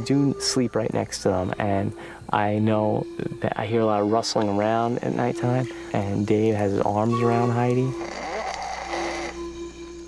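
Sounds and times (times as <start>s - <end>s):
soft held music notes: 0.0s - 10.0s
person snoring: 8.0s - 9.4s.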